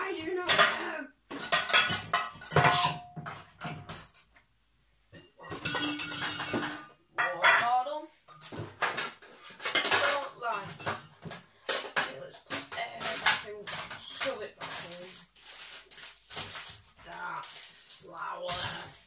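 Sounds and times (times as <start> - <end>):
pots and pans clattering: 0.2 - 4.3, 5.1 - 19.0.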